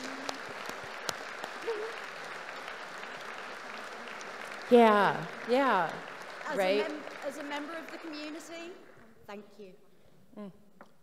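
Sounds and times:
audience applauding: 0:00.0 - 0:09.0.

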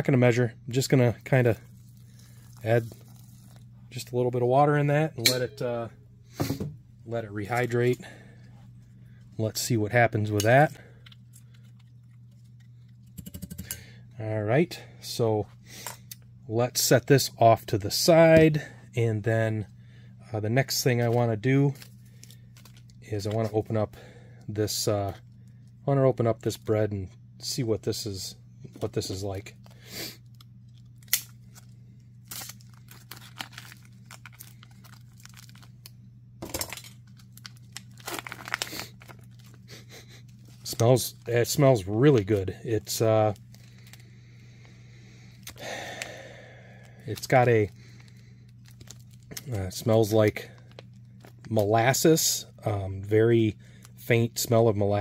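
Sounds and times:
steady low hum: 0:00.0 - 0:55.0
plastic packet being torn open: 0:29.6 - 0:41.3, 0:43.3 - 0:44.0, 0:47.0 - 0:51.8.

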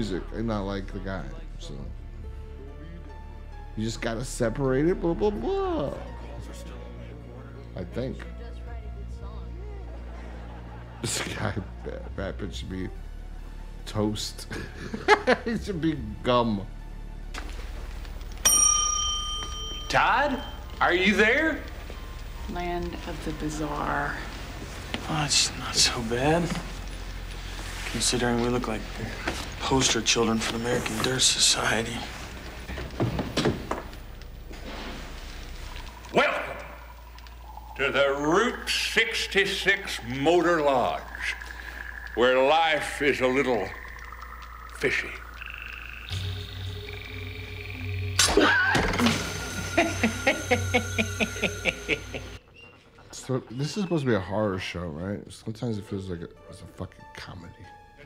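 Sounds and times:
service bell ringing: 0:18.4 - 0:20.8
pulsing frog-like trills: 0:35.1 - 0:53.8.

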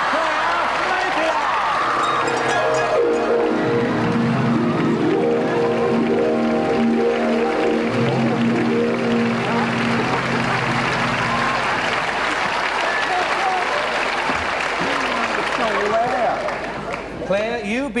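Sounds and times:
audience applauding: 0:00.0 - 0:17.2
entrance music: 0:01.7 - 0:14.1.

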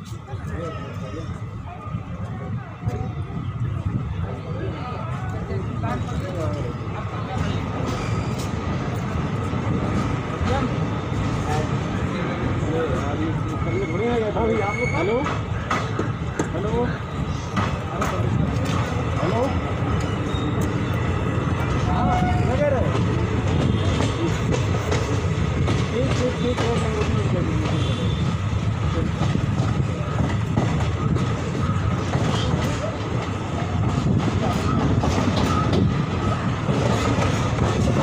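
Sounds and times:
train wheels rumbling on rails: 0:00.0 - 0:38.0.

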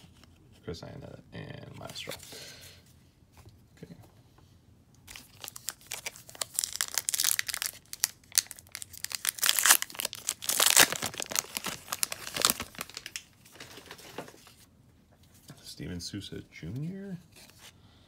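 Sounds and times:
foil wrapper tearing and crinkling: 0:05.1 - 0:14.0.

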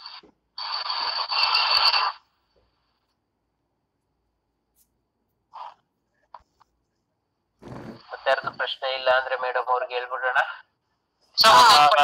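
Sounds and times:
microphone scraping and crackling: 0:07.6 - 0:08.7.

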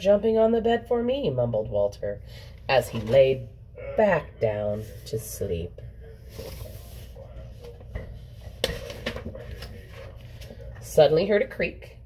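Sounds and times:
book pages rustling: 0:06.3 - 0:10.8.

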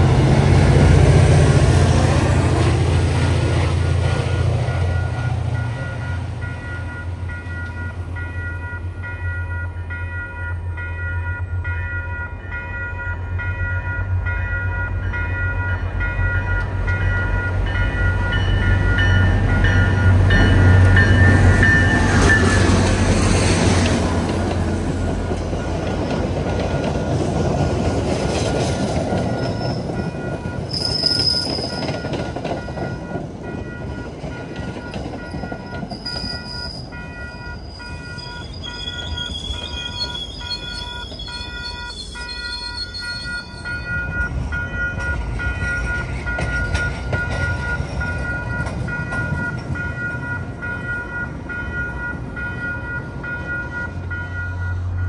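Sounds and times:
crossing bell ringing: 0:00.0 - 0:27.7, 0:28.3 - 0:55.0
diesel train passing: 0:00.0 - 0:55.0
train wheel squeal: 0:18.0 - 0:24.2, 0:28.3 - 0:50.8.

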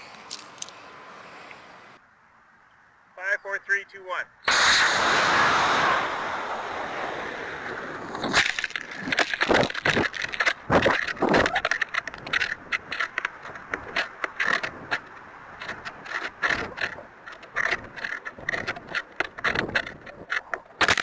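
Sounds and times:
crackle of clicks and scrapes: 0:00.0 - 0:00.8, 0:08.0 - 0:21.0
rushing air: 0:04.4 - 0:10.8
wind buffeting and rattling: 0:07.2 - 0:21.0.

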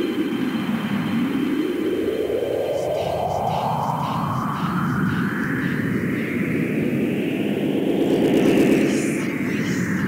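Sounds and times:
filtered noise sweep: 0:07.7 - 0:10.0.

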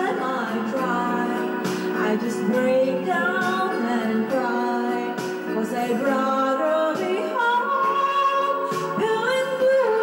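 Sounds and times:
woman singing karaoke: 0:00.0 - 0:10.0.

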